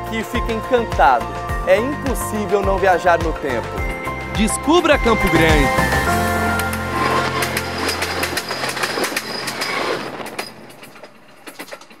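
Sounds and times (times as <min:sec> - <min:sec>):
music track: 0:00.0 - 0:09.2
train wheels clicking on rails: 0:06.5 - 0:12.0.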